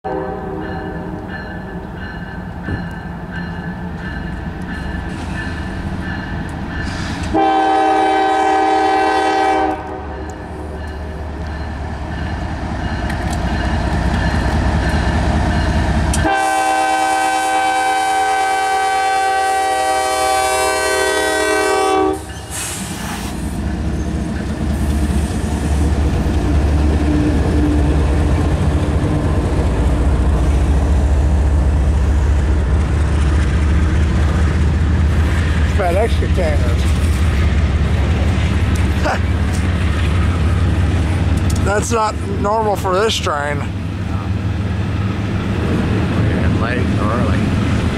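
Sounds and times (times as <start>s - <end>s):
diesel locomotive rumbling past: 0.0s - 47.9s
locomotive air horn blasts: 0.1s - 1.2s, 6.9s - 10.2s, 16.2s - 23.0s
freight cars rolling by: 22.3s - 47.9s.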